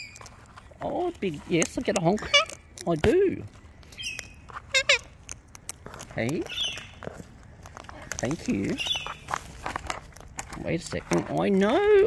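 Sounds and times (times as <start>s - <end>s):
cockatoo call: 3.9s - 5.1s.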